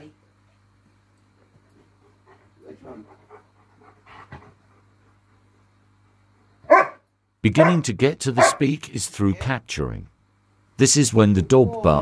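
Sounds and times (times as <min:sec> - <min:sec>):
dog barking loudly: 0:06.6 - 0:07.0, 0:07.6 - 0:07.8, 0:08.4 - 0:08.7.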